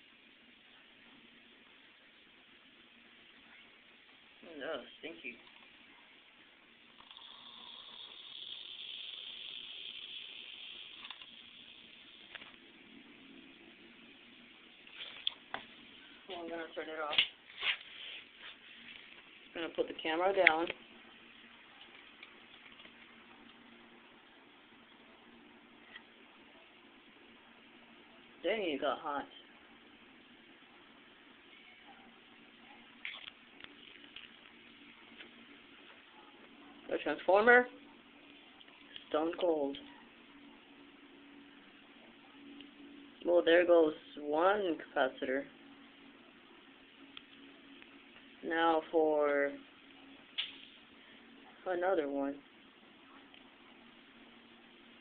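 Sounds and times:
faint low hum: 0.0 - 55.0
capacitor hissing: 1.6 - 31.4
scrape: 17.5 - 18.9.

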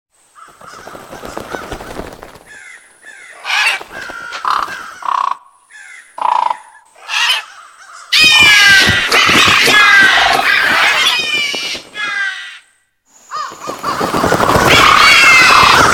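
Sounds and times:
crows cawing: 0.3 - 15.9
flock of crows cawing: 0.3 - 15.9.

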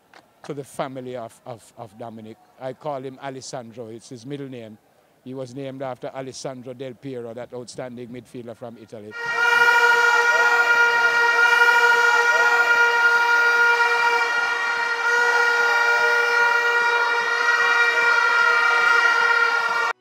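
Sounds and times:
crowd voices: 9.1 - 20.0
horn blown at steady pitch: 9.1 - 20.0.

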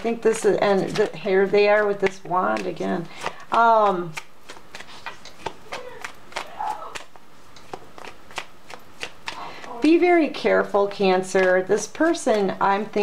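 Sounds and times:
cards being shuffled: 0.0 - 13.0.

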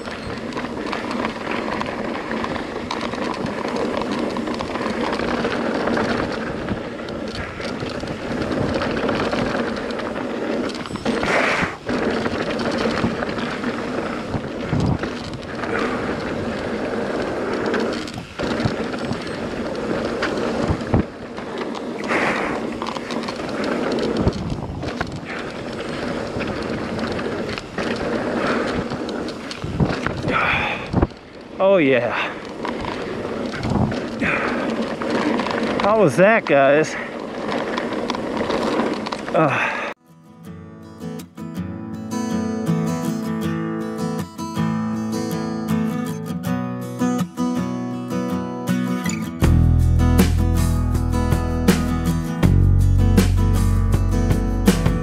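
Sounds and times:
bike rattling: 0.0 - 40.0, 42.1 - 55.0
bike tyres rumbling over gravel: 0.0 - 40.0, 42.1 - 55.0.

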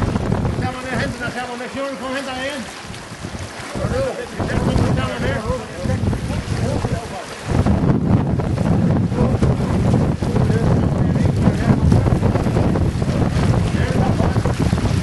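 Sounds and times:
wind buffeting microphone: 0.0 - 15.0
voices calling: 0.6 - 7.6.

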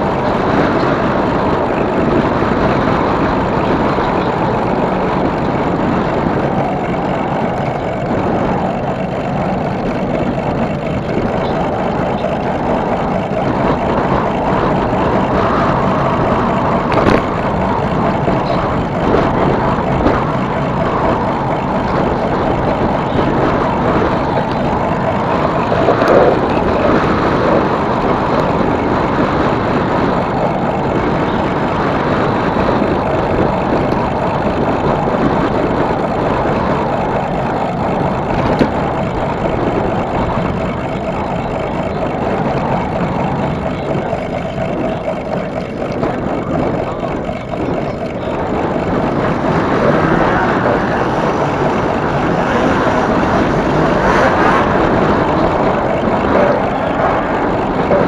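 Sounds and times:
bike tyres rolling on pavement: 0.0 - 58.0
wind on microphone: 0.0 - 58.0.

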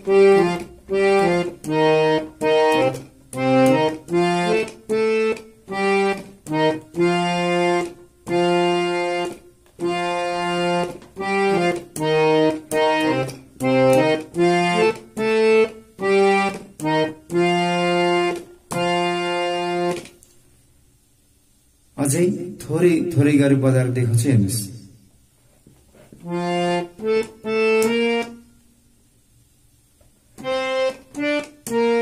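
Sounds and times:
harmonium playing folk melody: 0.0 - 20.1, 26.2 - 28.5, 30.4 - 32.0.

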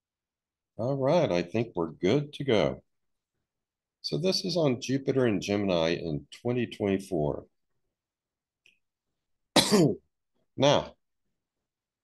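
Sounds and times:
man coughing: 9.6 - 10.0.

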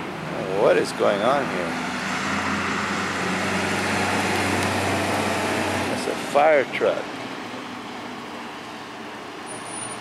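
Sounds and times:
fire truck engine drone: 0.0 - 10.0
road noise: 0.0 - 10.0.

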